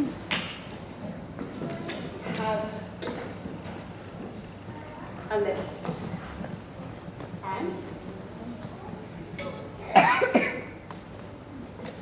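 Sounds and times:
person coughing: 9.9s - 10.7s.

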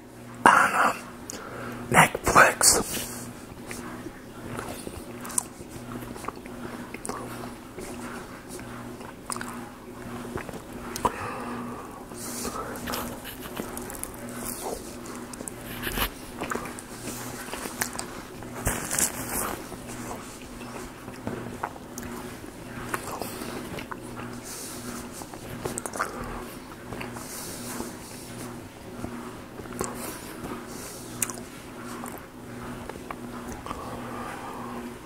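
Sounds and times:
biting and chewing: 4.5s - 11.2s, 12.2s - 28.7s, 29.6s - 33.9s
wet mouth clicks: 6.2s - 8.0s, 9.0s - 9.6s, 31.2s - 31.4s
soft crunches: 12.2s - 28.6s.

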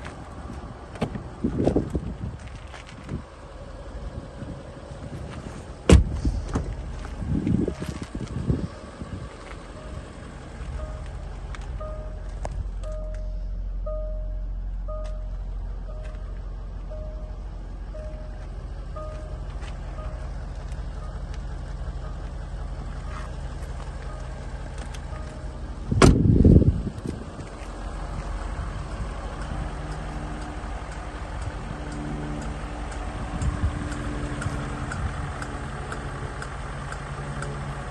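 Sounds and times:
vehicle engine idling: 0.0s - 37.9s
electronic warning beep: 10.8s - 11.2s, 11.8s - 16.3s, 16.9s - 19.4s
light ticking: 27.1s - 37.6s.

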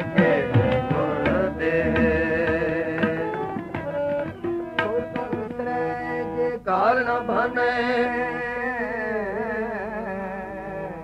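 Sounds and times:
person singing ornamented vocal line: 0.0s - 3.4s.

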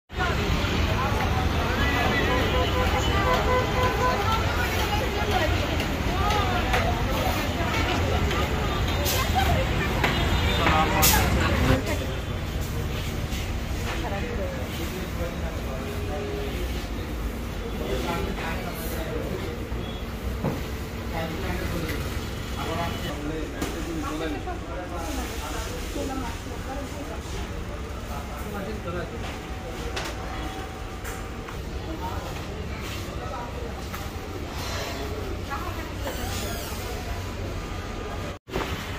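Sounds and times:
people talking: 0.1s - 38.4s
traffic rumble: 0.1s - 38.9s.

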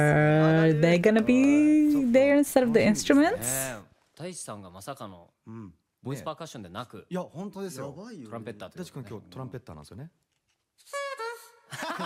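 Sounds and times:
men talking: 0.0s - 2.1s, 2.8s - 10.1s
man holding a pitched note: 10.9s - 11.7s.

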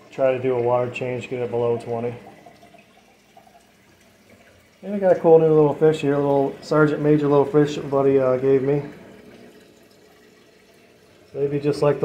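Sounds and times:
aquarium water trickling: 0.0s - 12.0s.

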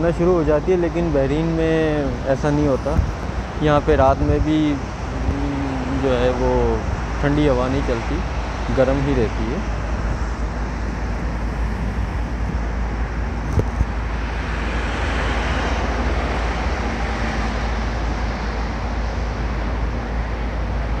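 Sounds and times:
road traffic: 0.0s - 21.0s
low rumble: 0.5s - 20.1s
wind on microphone: 1.3s - 21.0s.

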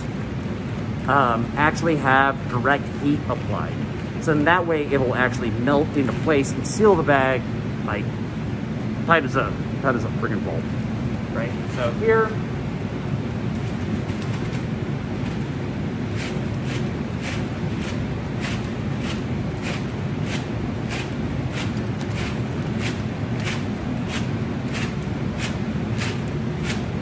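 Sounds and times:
blower fan noise: 0.0s - 27.0s.

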